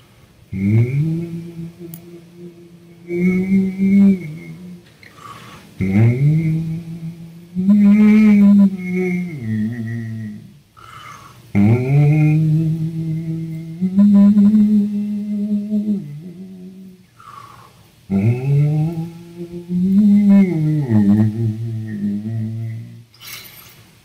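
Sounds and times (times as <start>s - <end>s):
man humming a melody: 0.5s - 5.2s, 5.8s - 10.6s, 11.6s - 17.1s, 18.1s - 23.1s.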